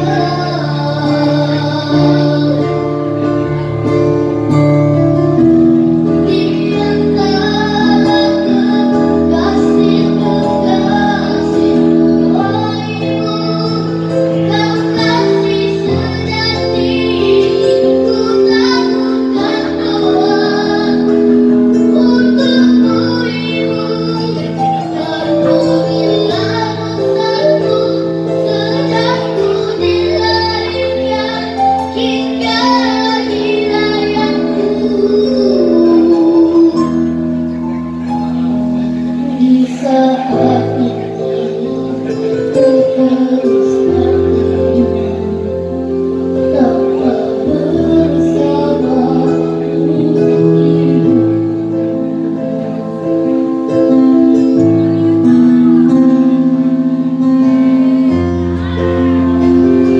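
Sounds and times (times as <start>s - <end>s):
boy singing a slow ballad: 0.0s - 59.9s
keyboard accompaniment: 0.0s - 59.9s.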